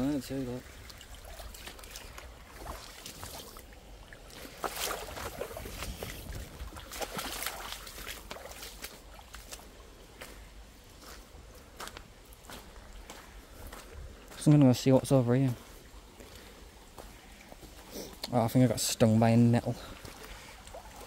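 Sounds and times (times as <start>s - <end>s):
stream trickling: 0.0s - 21.0s
footsteps splashing through water: 0.6s - 14.5s, 15.5s - 18.3s, 19.8s - 21.0s.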